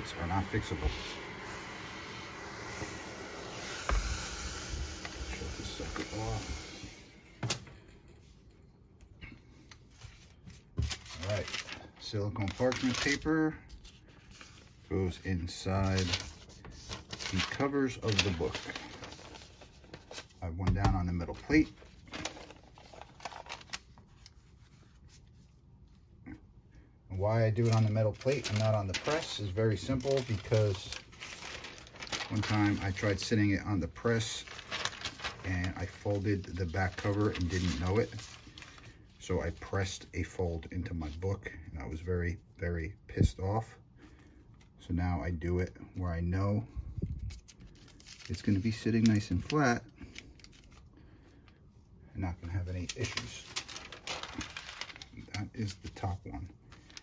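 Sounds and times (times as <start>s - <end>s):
handheld steamer hissing: 0.0s - 7.2s
paper rustling: 9.4s - 26.0s, 27.2s - 41.3s, 47.0s - 51.6s, 52.2s - 57.0s.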